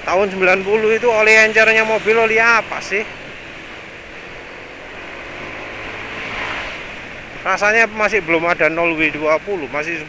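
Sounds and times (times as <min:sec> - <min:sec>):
road noise: 0:00.0 - 0:10.0
wind rush: 0:01.4 - 0:07.6.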